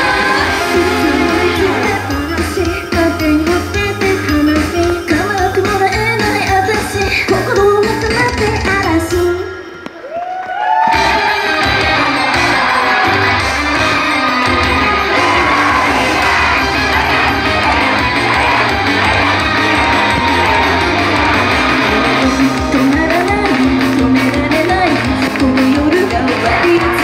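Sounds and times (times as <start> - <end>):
crowd shouting and whooping: 0.0 - 2.1, 9.9 - 27.0
singers' voices: 0.0 - 9.7, 11.0 - 27.0
idol pop music over loudspeakers: 0.0 - 9.9, 10.8 - 27.0.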